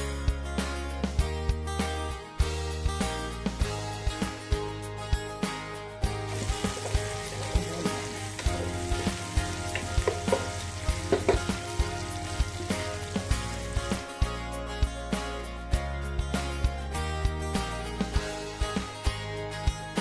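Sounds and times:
garlic and onion sizzling in oil: 6.1s - 14.2s
wooden spoon scraping wok: 6.3s - 13.9s.

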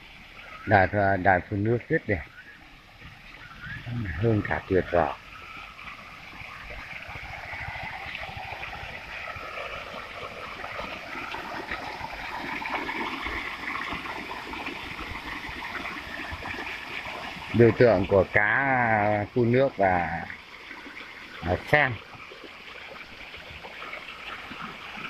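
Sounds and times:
fountain water splashing: 0.0s - 25.0s.

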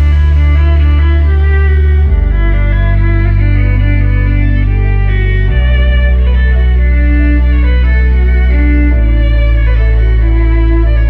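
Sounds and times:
electric violin slow melody: 0.0s - 11.0s
sustained low bass: 0.0s - 11.0s.

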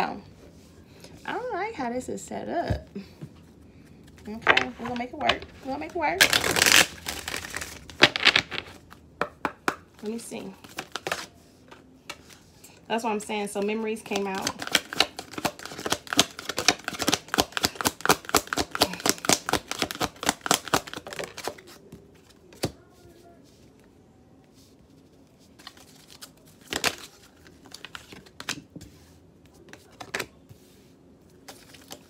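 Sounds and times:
cards being shuffled: 4.0s - 9.6s, 14.1s - 22.7s, 25.5s - 30.8s, 31.4s - 32.0s.

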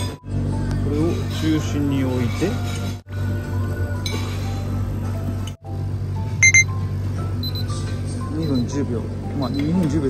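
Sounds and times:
background music: 0.0s - 10.0s
high-pitched electronic beeps: 6.4s - 6.7s.

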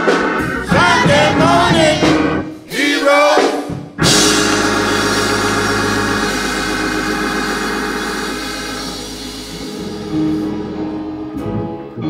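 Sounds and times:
cymbal wash: 4.0s - 10.9s
deep bass note: 4.0s - 12.0s
sustained keyboard chord: 4.0s - 12.0s.

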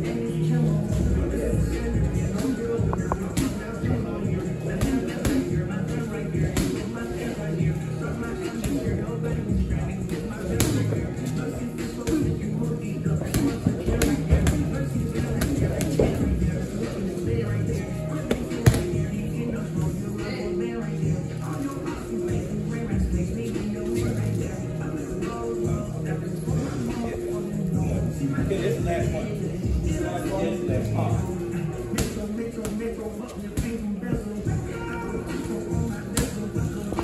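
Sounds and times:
music: 0.0s - 37.0s.

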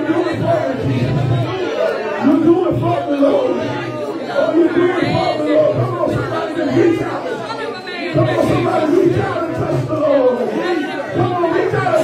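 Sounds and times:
man speaking into a microphone: 0.0s - 7.2s, 8.1s - 12.0s
people praying aloud: 0.0s - 12.0s.

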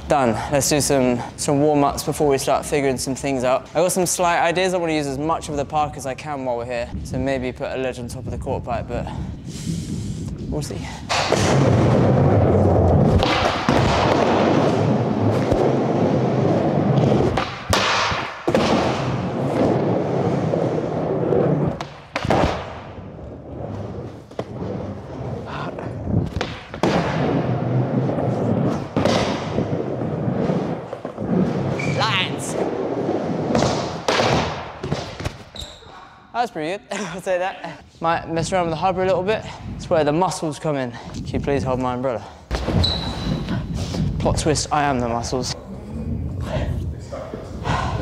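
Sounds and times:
skateboard clacks and thuds: 11.1s - 20.4s, 21.6s - 22.9s, 26.2s - 31.8s
skateboard wheels rolling on wood: 11.1s - 35.5s.

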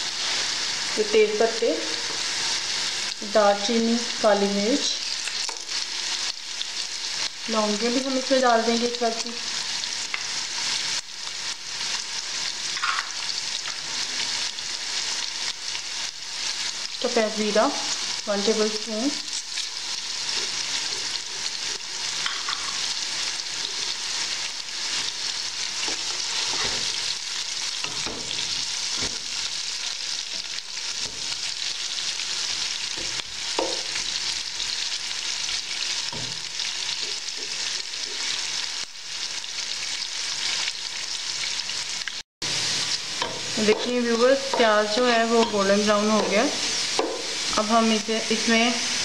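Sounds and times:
onions sizzling in hot oil: 0.0s - 49.0s.

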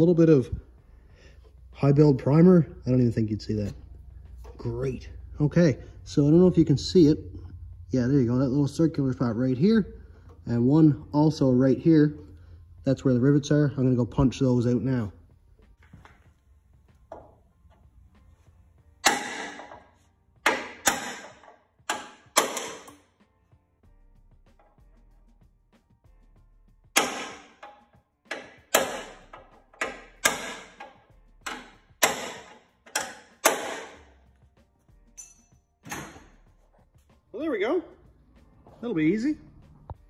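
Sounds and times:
hammer striking steel punch: 19.0s - 23.0s, 27.0s - 34.1s.

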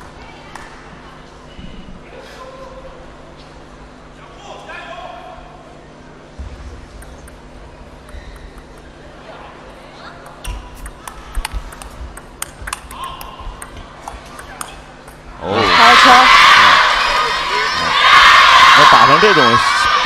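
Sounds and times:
table tennis ball clicking: 10.2s - 15.3s
crowd cheering and shouting: 14.3s - 20.0s.

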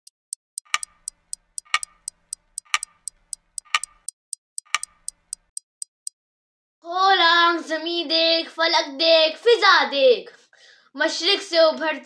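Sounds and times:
clock ticking: 0.0s - 6.1s.

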